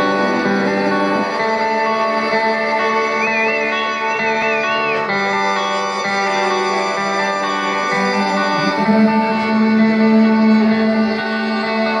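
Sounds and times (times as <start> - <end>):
guitar: 0.0 - 12.0
live band playing slowly: 0.0 - 12.0.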